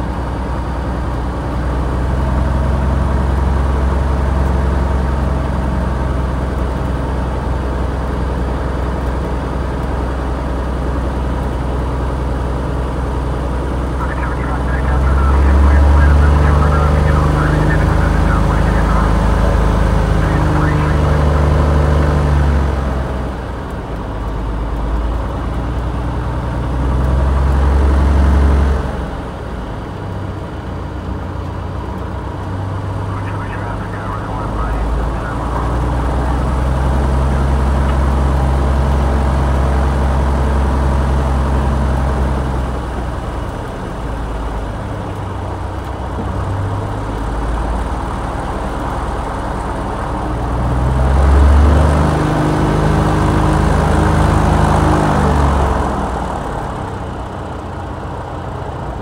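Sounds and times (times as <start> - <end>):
propeller plane engine running: 0.0 - 59.0.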